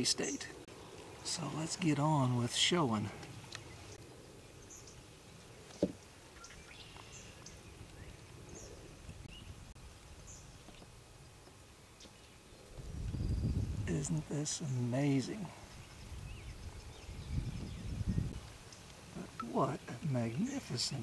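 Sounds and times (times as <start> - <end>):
faint bird chirps: 3.5 - 9.6.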